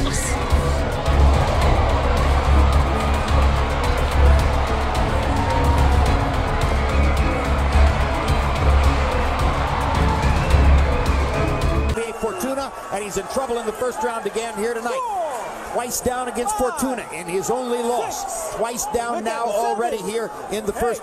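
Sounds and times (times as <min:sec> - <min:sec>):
music with heavy pulsing bass beat: 0:00.0 - 0:12.0.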